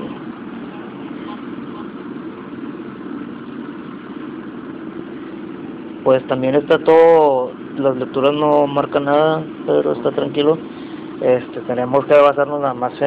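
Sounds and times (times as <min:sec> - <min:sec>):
steady low hum with hiss: 0:00.0 - 0:13.0.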